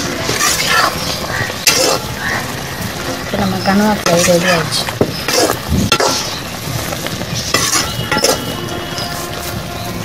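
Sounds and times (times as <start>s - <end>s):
gravy bubbling and sizzling: 0.0s - 10.0s
spatula scraping a pan: 0.2s - 2.5s, 4.0s - 9.6s.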